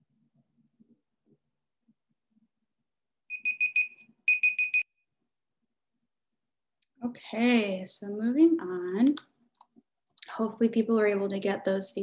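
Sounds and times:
electronic timer alarm beeps: 3.3 - 5.0.

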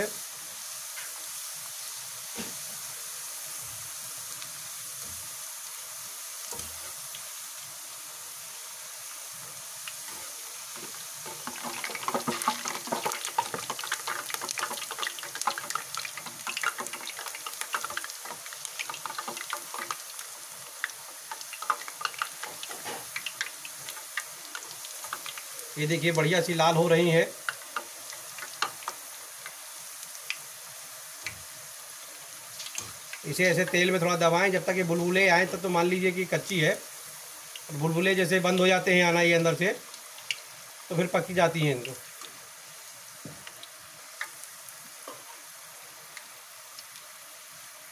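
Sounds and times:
potato slices sizzling in oil: 0.0 - 47.9
oil crackling and popping: 9.8 - 31.6, 32.2 - 34.3, 39.8 - 41.0, 43.2 - 47.2.

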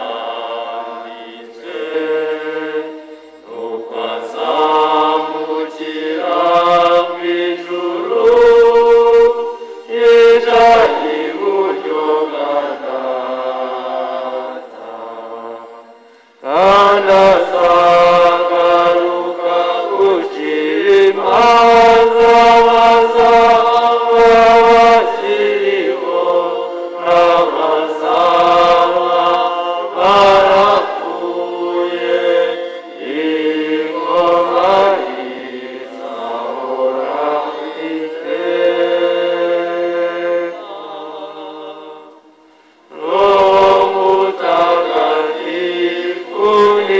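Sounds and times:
congregation singing a chant: 0.0 - 46.9.

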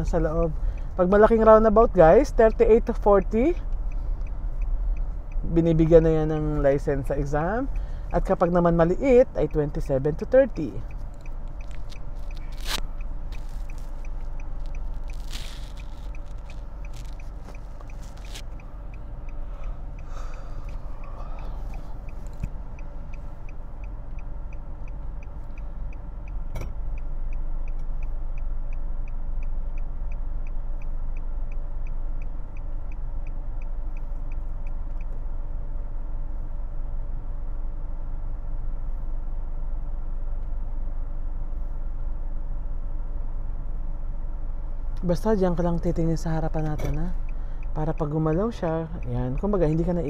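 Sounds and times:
engine and road rumble: 0.0 - 50.0
turn signal ticking: 0.0 - 50.0.

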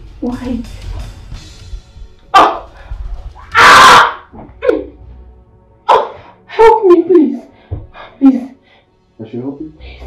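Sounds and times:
film music: 0.0 - 10.0.

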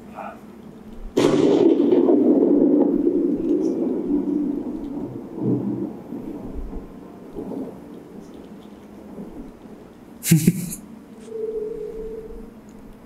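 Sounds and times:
rolling thunder: 1.0 - 10.6.

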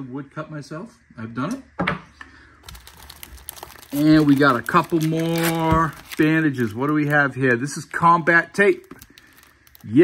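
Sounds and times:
plastic wrapping crinkling: 2.6 - 10.0.

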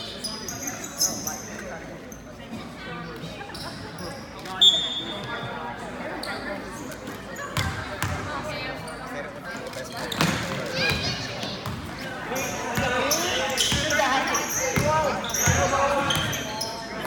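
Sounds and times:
chatter of voices: 0.0 - 17.0.

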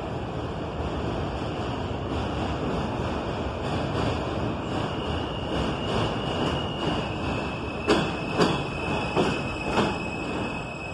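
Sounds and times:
subway train running: 0.0 - 10.9
high wheel squeal: 4.7 - 10.9.

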